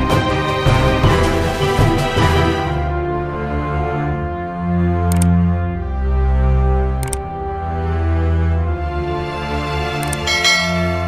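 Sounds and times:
music: 0:00.0 - 0:11.0
quick clicks: 0:05.1 - 0:05.4, 0:07.0 - 0:07.2, 0:10.0 - 0:10.3
bright bell chime: 0:10.3 - 0:11.0.

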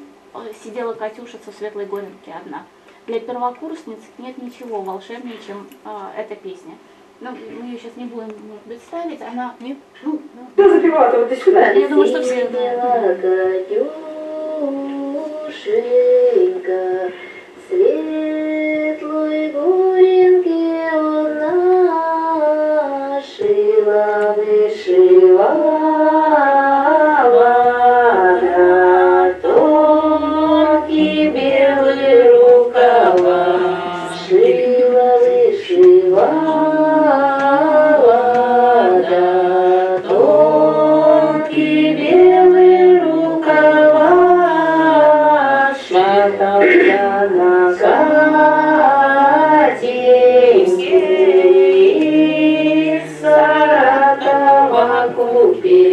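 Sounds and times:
women singing in harmony: 0:11.5 - 0:55.9.

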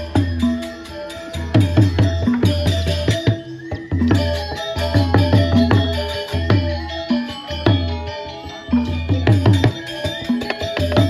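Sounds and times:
drum beats: 0:00.0 - 0:11.0
gamelan bronze strikes: 0:00.0 - 0:11.0.

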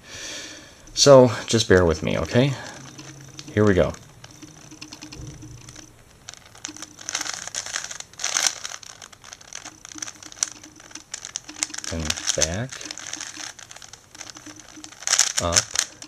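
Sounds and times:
plastic puzzle cube clicking: 0:01.5 - 0:16.0.

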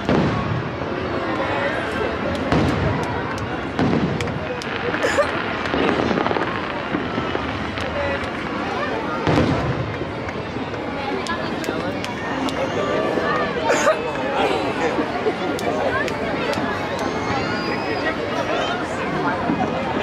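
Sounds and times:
fireworks booms and crackles: 0:00.0 - 0:13.6, 0:15.5 - 0:20.0.

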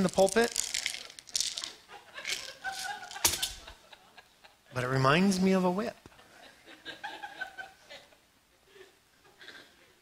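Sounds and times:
scratchy rustling of handled object: 0:00.0 - 0:03.5.

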